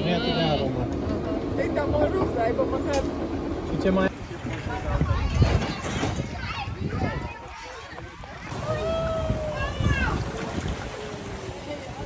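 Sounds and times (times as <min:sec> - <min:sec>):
churning water: 0:00.0 - 0:12.0
wind rumble on microphone: 0:04.1 - 0:12.0
faint voices: 0:04.2 - 0:12.0.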